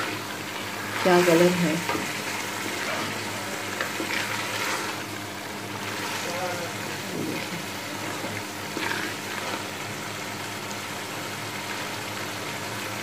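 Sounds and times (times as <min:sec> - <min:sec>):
food sizzling in oil: 0:00.0 - 0:13.0.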